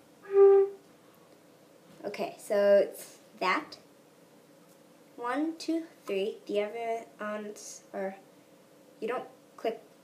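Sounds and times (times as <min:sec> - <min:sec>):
flute playing short note: 0:00.2 - 0:00.8.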